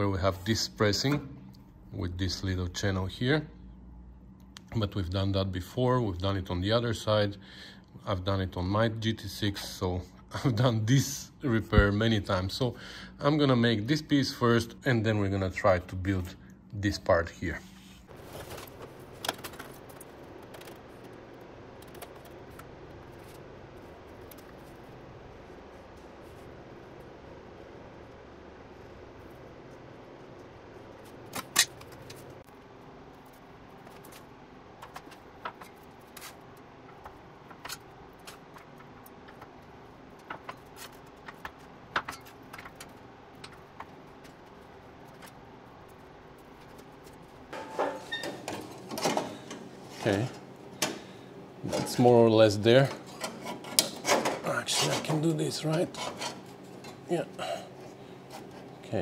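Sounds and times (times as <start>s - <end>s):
low shop hum: 0.0s - 59.0s.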